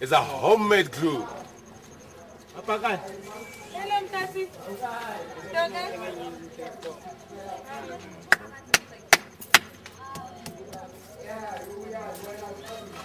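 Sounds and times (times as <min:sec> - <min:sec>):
street voices: 0:00.0 - 0:13.0.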